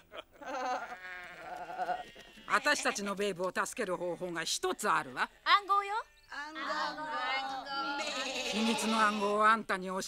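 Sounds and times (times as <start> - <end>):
sheep bleating: 0.4 - 3.2, 7.7 - 9.5.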